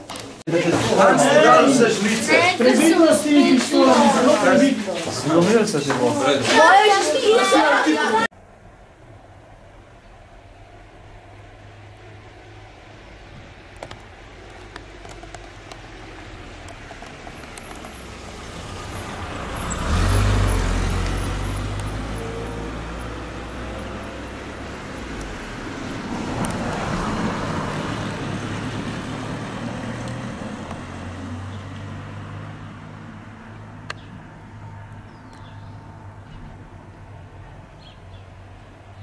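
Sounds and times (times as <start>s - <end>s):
vehicles passing on street: 0.0s - 39.0s.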